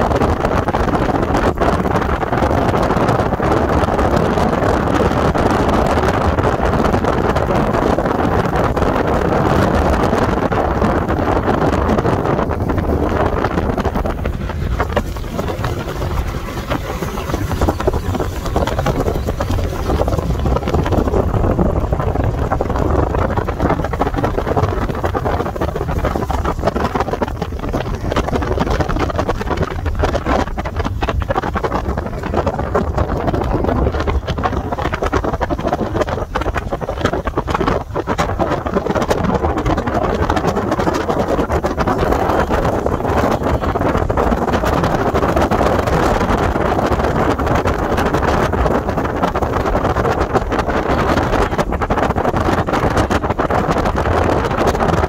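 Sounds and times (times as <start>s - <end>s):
outboard motor running: 0.0s - 55.0s
water rushing past hull: 0.0s - 55.0s
wind buffeting microphone: 0.0s - 55.0s.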